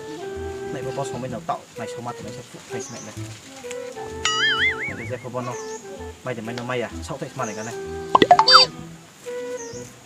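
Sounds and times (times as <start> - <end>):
background music: 0.0 - 10.0
gliding whistle tone: 4.2 - 5.4, 8.2 - 8.7
sharp pops: 8.2 - 8.7.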